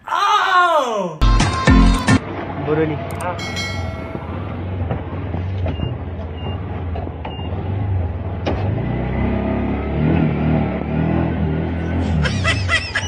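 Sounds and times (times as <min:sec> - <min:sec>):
street traffic: 0:01.3 - 0:13.0
auto-rickshaw engine running: 0:02.2 - 0:13.0.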